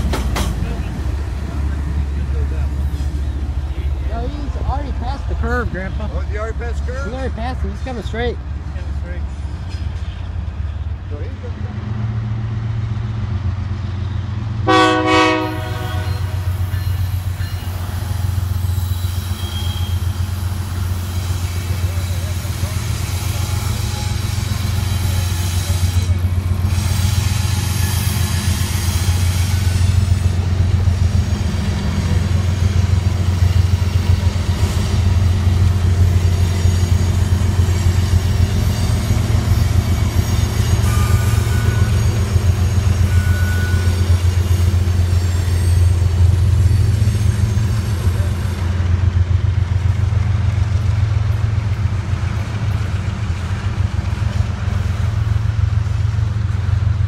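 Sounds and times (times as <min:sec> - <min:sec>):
train wheels clattering on rails: 0:00.0 - 0:10.9, 0:15.5 - 0:57.0
locomotive engine rumble: 0:00.0 - 0:57.0
locomotive horn toot: 0:14.6 - 0:16.7, 0:19.2 - 0:20.3, 0:40.8 - 0:44.2.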